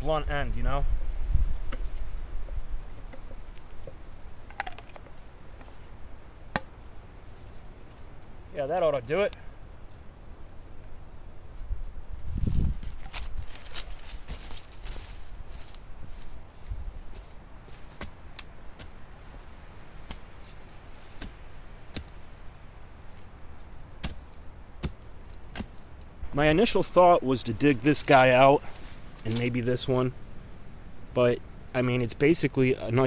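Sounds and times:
digging stick knocking into rocky ground: 17.7 - 19.0, 21.0 - 22.2, 24.0 - 25.8
dull thump: 24.0 - 25.7.

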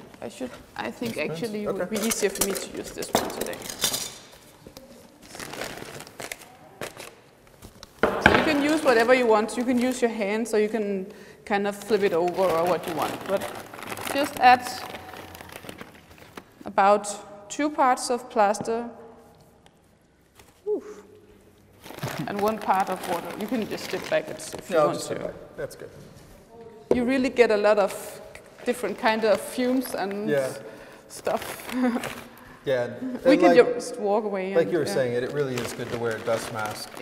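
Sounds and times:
plastic sheeting rustling: 4.2 - 7.9, 11.7 - 16.6, 21.7 - 25.0, 31.2 - 32.4, 34.7 - 37.0
paper sack crinkling: 5.2 - 7.9, 11.7 - 16.6, 21.8 - 25.0, 35.0 - 37.0.

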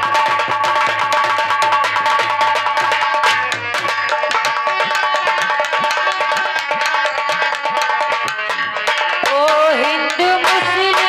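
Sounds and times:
fast hand drum strokes: 0.0 - 11.0.

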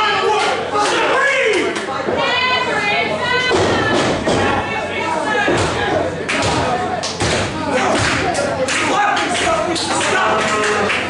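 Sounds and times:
crowd shouting: 0.0 - 10.9.

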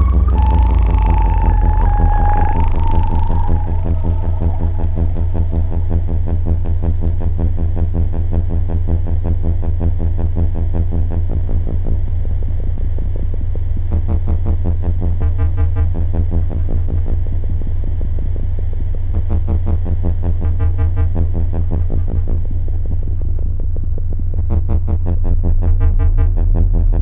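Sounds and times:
wavering whistling tone: 0.0 - 7.4
pulsing synthesizer drone: 0.0 - 15.0.

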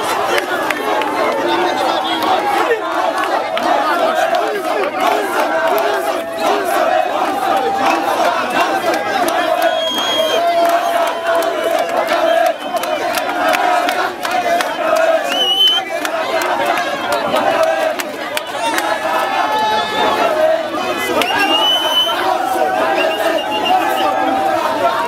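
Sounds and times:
crowd shouting and cheering: 0.0 - 25.0.

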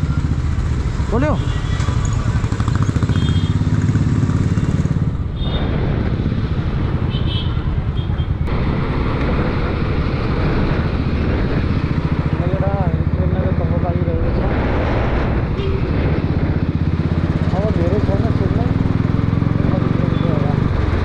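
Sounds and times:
road traffic: 0.0 - 21.0.

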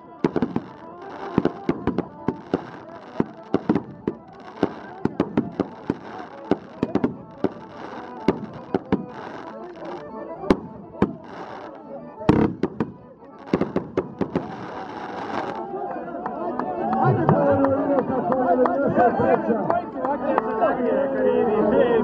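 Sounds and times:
piano accordion playing: 0.0 - 15.9
crowd voices: 0.0 - 22.0.

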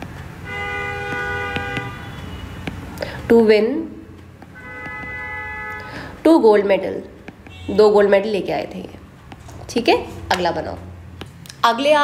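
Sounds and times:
vehicle horn two-note blast: 0.4 - 2.7, 4.5 - 6.1, 7.5 - 8.0.

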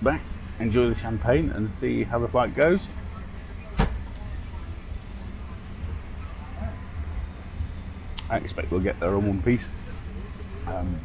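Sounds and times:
airliner cabin hum: 0.0 - 11.0.

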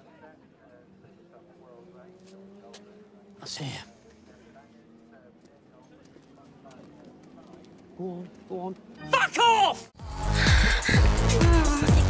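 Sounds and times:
faint distant voices: 0.0 - 9.0.

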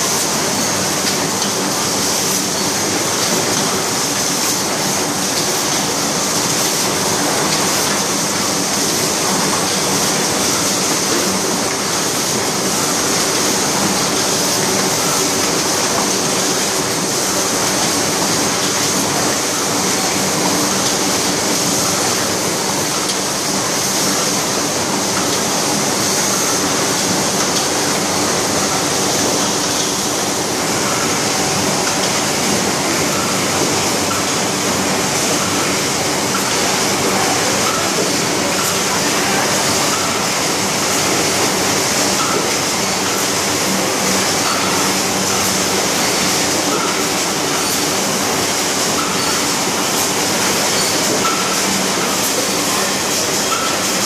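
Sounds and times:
factory machines running: 0.0 - 54.0.

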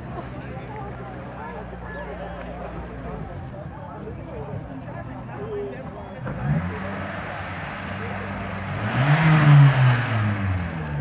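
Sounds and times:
car engine revving: 6.2 - 11.0.

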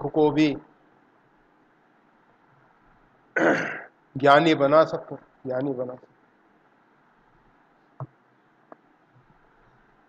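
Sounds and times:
man clearing his throat: 3.4 - 4.0.

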